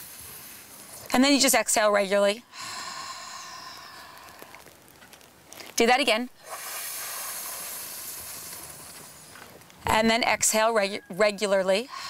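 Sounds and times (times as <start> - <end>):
woman's hissing inhale: 2.5 - 4.5, 6.4 - 9.3.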